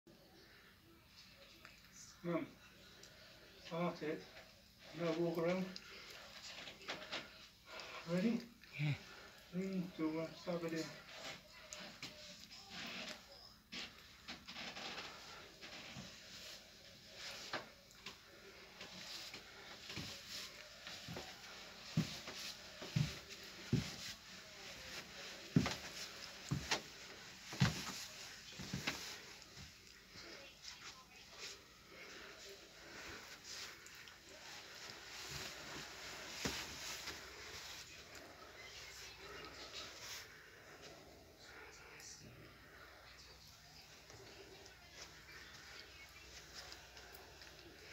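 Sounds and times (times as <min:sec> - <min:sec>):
cloth rustling: 0:12.2 - 0:40.7
heavy footsteps on stairs: 0:21.9 - 0:24.1.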